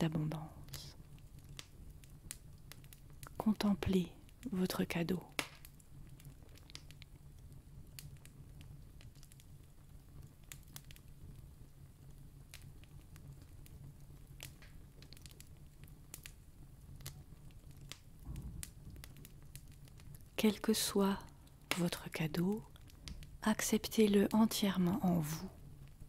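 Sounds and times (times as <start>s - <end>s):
faint clicks and crackles: 0.0s - 26.0s
low hum: 18.3s - 19.3s.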